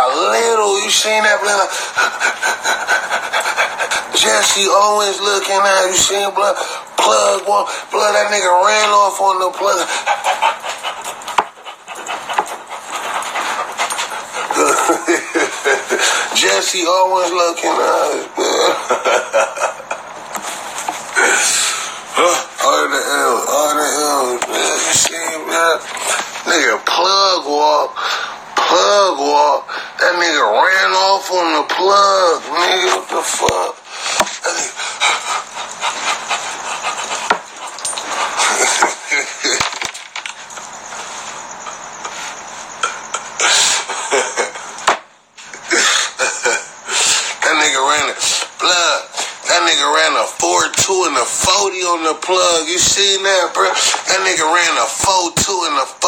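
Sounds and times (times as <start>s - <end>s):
man laughing breathlessly: 1.3s - 4.8s, 13.3s - 16.4s, 18.3s - 20.6s, 33.9s - 36.9s, 38.2s - 39.9s, 40.8s - 44.9s, 45.5s - 47.4s.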